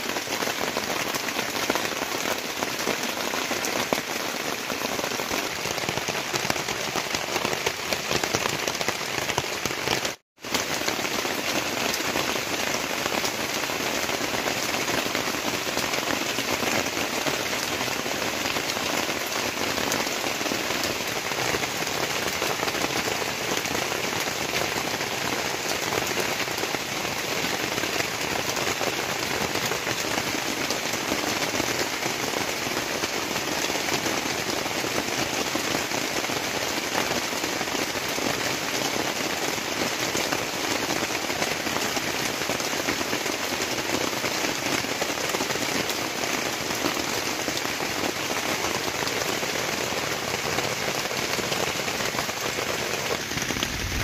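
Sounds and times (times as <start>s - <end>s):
rain on a plastic tarpaulin: 0.0s - 54.0s
water streaming off tarp edge: 41.9s - 54.0s.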